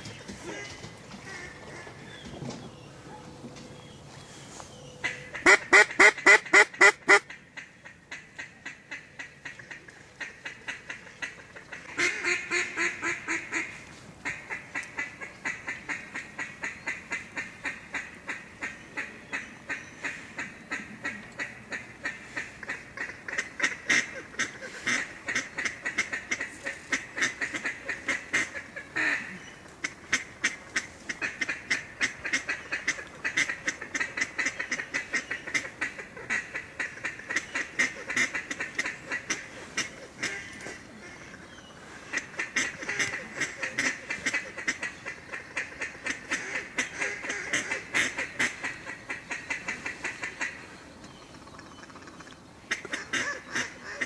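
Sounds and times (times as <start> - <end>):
duck quacking rapidly: 5.0 - 7.4, 8.1 - 16.0, 19.0 - 41.4, 42.0 - 50.6, 52.7 - 54.0.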